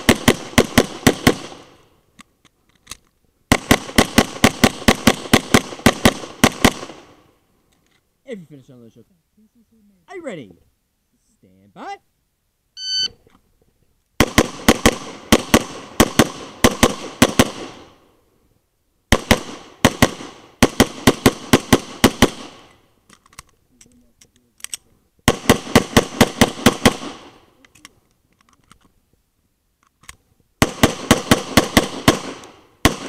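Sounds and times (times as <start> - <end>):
pistol shots: 0.0 - 1.8, 3.5 - 7.1, 14.2 - 17.9, 19.1 - 22.7, 25.3 - 27.4, 30.6 - 33.0
shot timer beep: 12.8 - 13.2.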